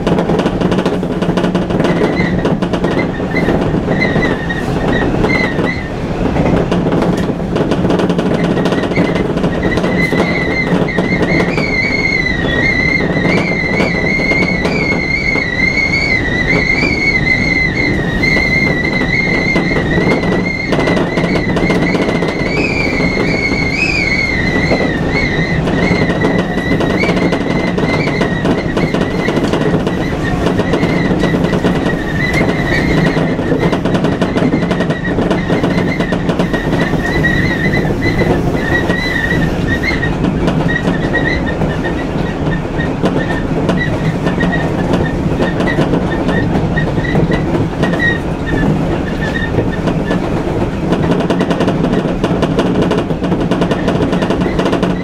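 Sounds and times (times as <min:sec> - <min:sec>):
wheels rumbling on rail: 0:00.0 - 0:55.0
wheel squeal: 0:01.8 - 0:05.9, 0:08.3 - 0:50.3, 0:53.6 - 0:55.0.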